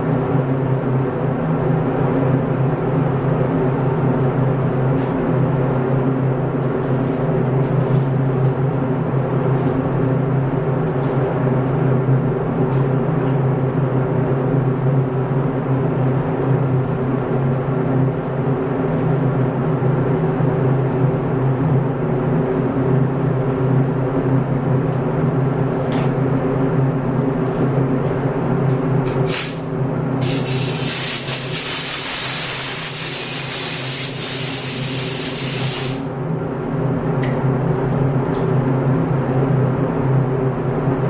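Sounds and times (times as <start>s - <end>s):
ventilation fan hum: 0.0s - 41.0s
compressed air burst: 29.3s - 36.1s
paint spray gun hissing: 30.2s - 36.1s.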